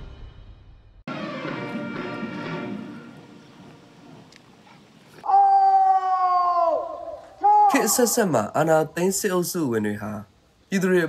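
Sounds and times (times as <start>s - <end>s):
man shouting a drawn-out command: 5.3s - 8.6s.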